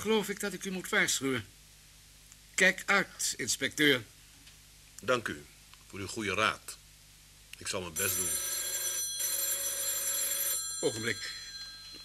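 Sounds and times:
telephone bell ringing: 8.0 - 12.0.

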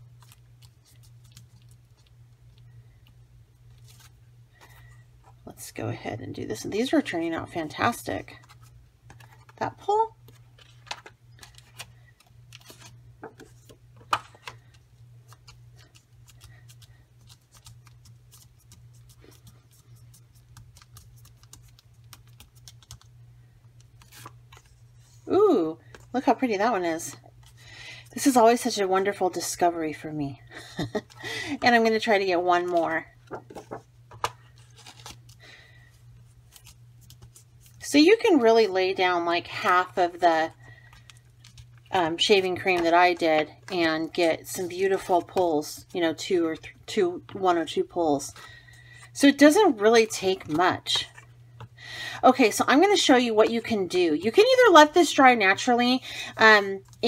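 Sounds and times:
soft paper rustling: 0.0 - 5.5, 6.9 - 23.1, 23.7 - 26.4, 30.8 - 38.4
steady low hum: 0.0 - 57.0
paper taps and rustles: 33.2 - 34.4.

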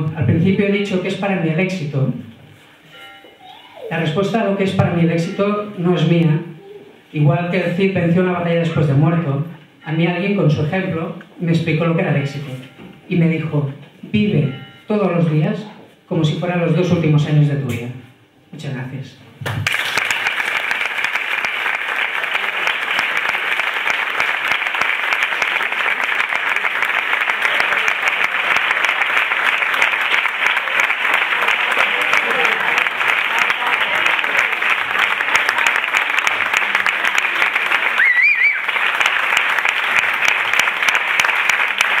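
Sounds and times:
short high tone: 3.1 - 4.1
audience applauding: 19.6 - 42.0.

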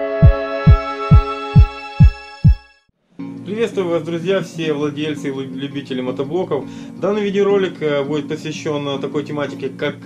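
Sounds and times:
held synth chord: 0.0 - 2.4
deep heartbeat-like thumps: 0.2 - 2.6.

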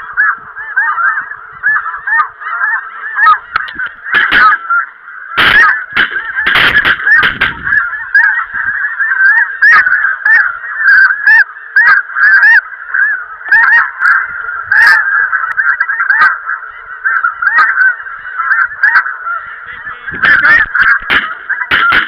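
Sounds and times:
flock of geese honking: 0.0 - 22.0.

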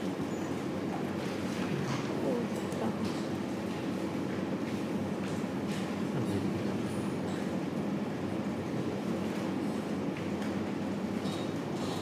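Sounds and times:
low mechanical room hum: 0.0 - 12.0.

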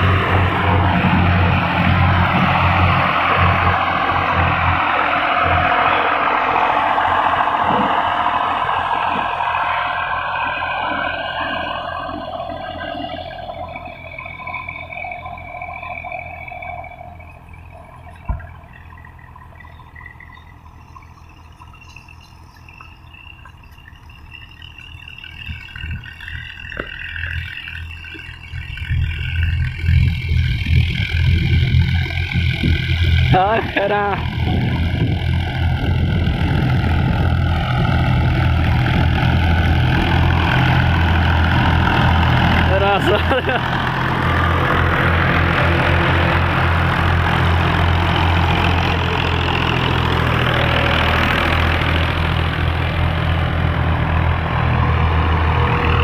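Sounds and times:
tractor diesel engine drone: 0.0 - 56.0.

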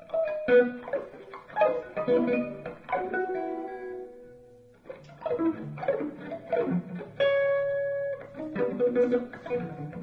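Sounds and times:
electric guitar playing jazz: 0.0 - 10.0.

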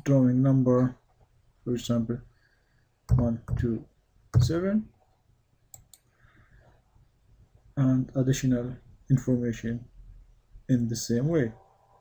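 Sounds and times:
computer mouse clicks: 5.7 - 6.1.

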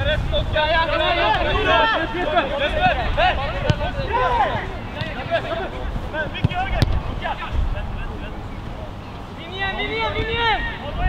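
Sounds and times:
wind rumbling on microphone: 0.0 - 9.4
players calling and shouting: 0.0 - 11.0.

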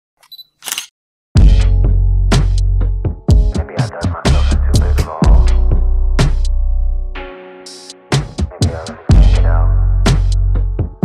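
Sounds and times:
rap beat with deep bass: 1.4 - 6.6, 7.8 - 11.0.

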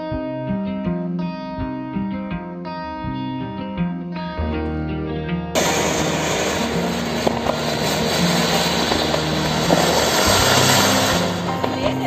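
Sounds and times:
background guitar music: 0.0 - 12.0
fireworks crackles: 5.6 - 12.0
fountain fireworks hissing: 5.6 - 12.0.

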